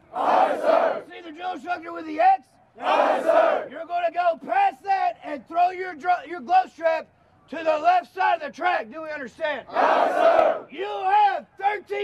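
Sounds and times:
group yelling in unison: 2.8s - 3.7s, 9.7s - 10.6s.

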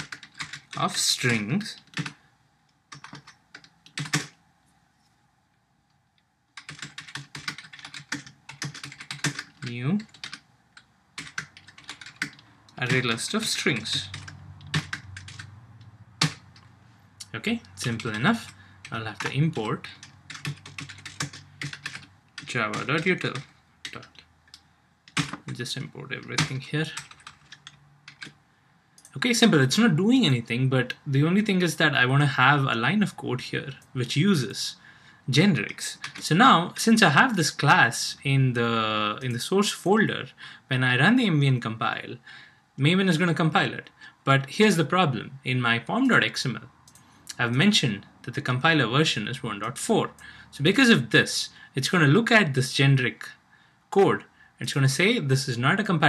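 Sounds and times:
typing on computer keyboard: 0.0s - 2.2s, 2.9s - 4.4s, 6.6s - 13.2s, 13.8s - 15.5s, 16.2s - 16.7s, 17.9s - 24.2s, 25.1s - 25.6s, 26.3s - 28.4s, 36.0s - 36.2s.

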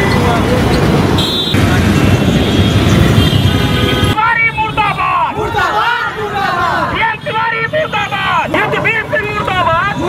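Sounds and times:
street traffic: 0.0s - 10.0s
voices of marchers: 3.9s - 10.0s
man shouting into a microphone: 4.2s - 10.0s.

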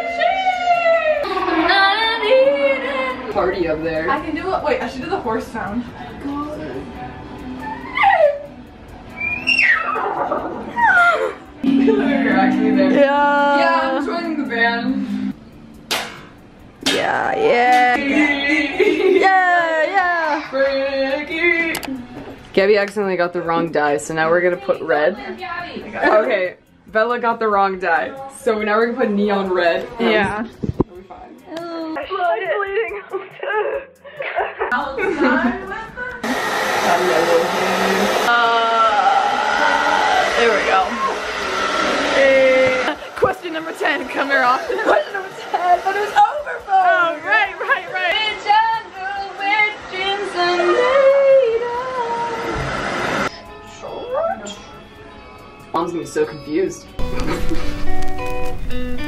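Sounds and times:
music with held low note: 10.2s - 36.2s.

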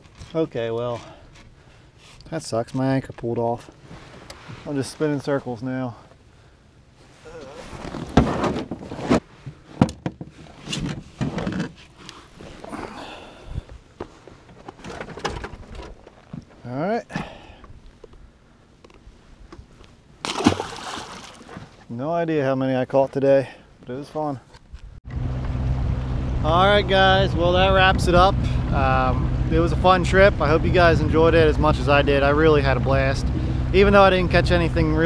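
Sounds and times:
water sloshing against hull: 19.6s - 21.9s.

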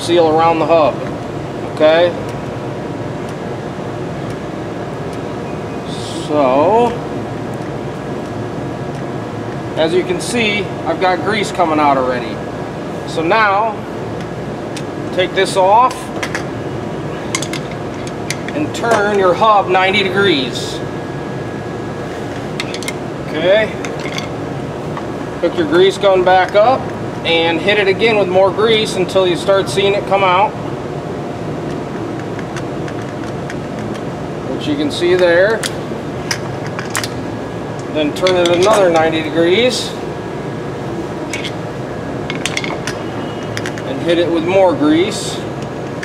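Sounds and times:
fan humming: 0.0s - 46.0s
screwdriver clinking on metal studs: 38.2s - 39.2s, 41.3s - 41.6s.

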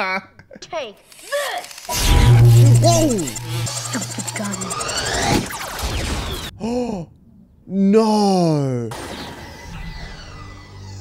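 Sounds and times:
energy weapon blast crashing: 1.9s - 6.5s
man gasping oh: 6.6s - 7.1s.

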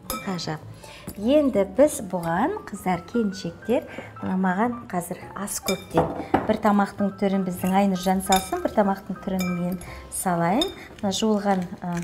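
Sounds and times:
woman talking: 0.2s - 12.0s
dishes clinking on counter: 5.7s - 6.6s.

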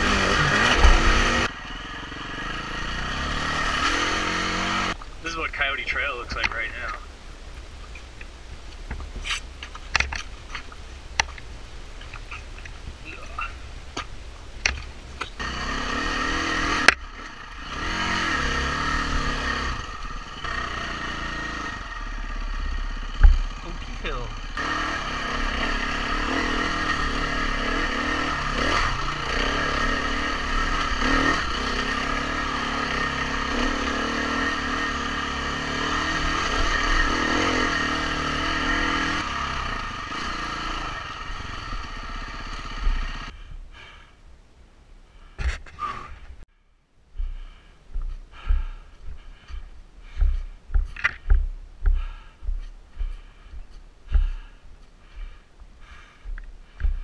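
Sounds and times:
dirt bike engine revving: 0.0s - 7.0s, 15.4s - 43.3s.

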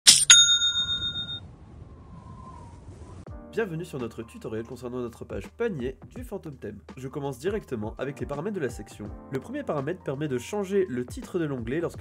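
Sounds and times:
metallic strikes: 0.0s - 1.4s
bright bell-like ring: 0.1s - 1.4s.

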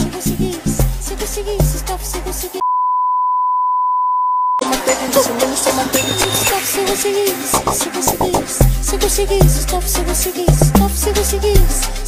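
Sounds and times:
dance music: 0.0s - 2.6s, 4.6s - 12.0s
steady single-pitch beep: 2.6s - 5.1s, 6.0s - 6.6s.

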